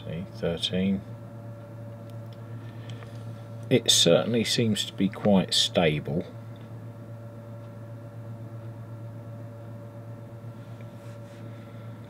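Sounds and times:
transformer electrical hum: 0.0 - 12.0.

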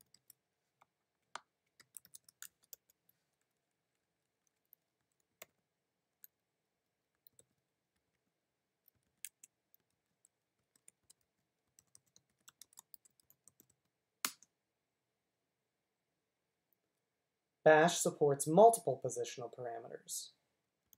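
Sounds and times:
computer keyboard typing: 0.0 - 0.4, 1.2 - 5.6, 7.2 - 8.2, 8.8 - 14.4.

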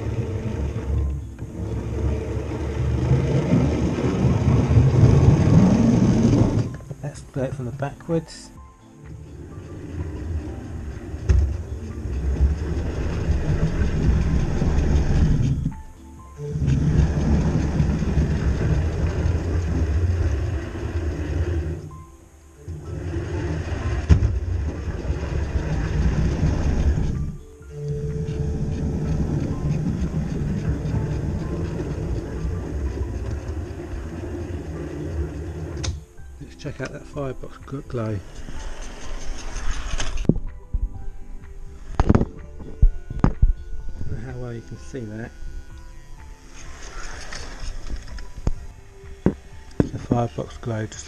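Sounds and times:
model train motor rumble: 0.0 - 6.8, 9.4 - 15.7, 16.6 - 21.9, 22.8 - 36.0.

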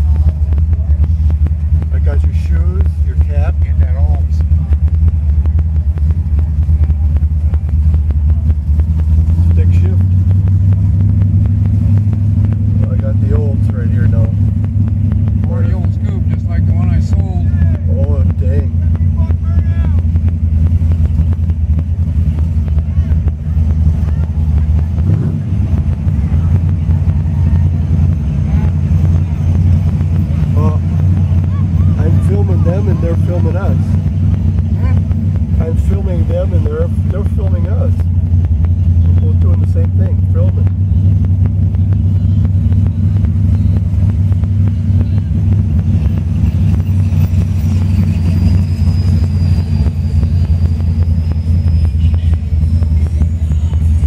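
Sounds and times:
car engine rumbling: 0.0 - 54.0
faint indistinct voices: 0.0 - 54.0.

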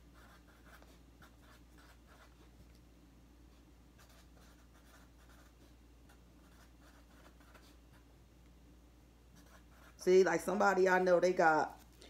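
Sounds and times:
low steady hum: 0.0 - 12.0
pen scratching handwriting: 0.1 - 2.4, 4.0 - 8.0, 9.4 - 10.0.

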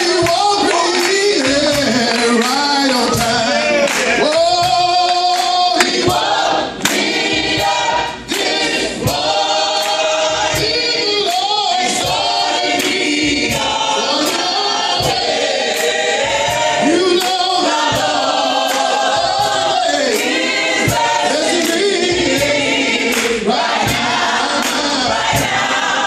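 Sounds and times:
hands clapping in time: 0.0 - 25.8
group singing gospel song: 0.0 - 26.0.

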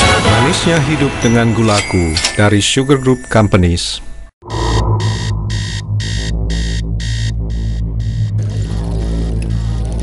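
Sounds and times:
alarm clock beeping: 4.4 - 8.7
steady low drone: 4.4 - 10.0.

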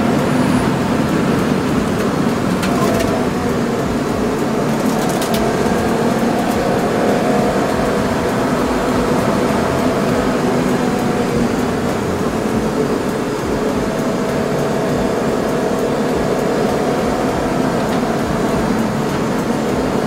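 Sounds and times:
car engine pulling under load: 0.0 - 20.0
road and wind noise: 0.0 - 20.0.

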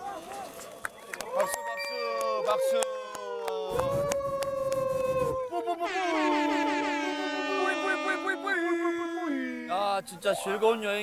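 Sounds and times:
men imitating trumpet fanfare: 3.7 - 9.8.

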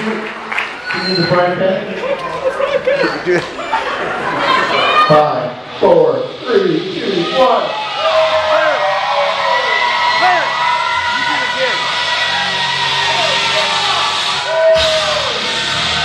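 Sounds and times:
men yelling and whooping: 7.0 - 16.0
loud music: 9.4 - 16.0.

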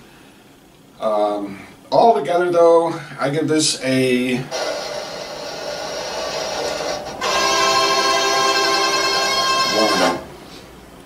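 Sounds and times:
reedy chords blown: 4.5 - 10.4.

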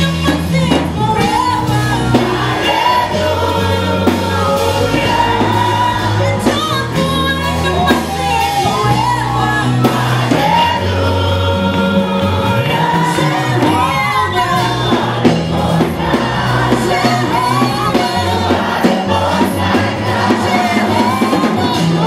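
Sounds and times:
band playing worship music: 0.0 - 22.0
singers: 0.0 - 22.0.

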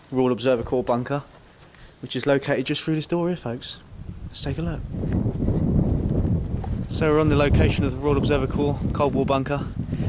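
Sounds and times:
wind buffeting microphone: 3.2 - 10.0
footsteps: 5.0 - 7.3.

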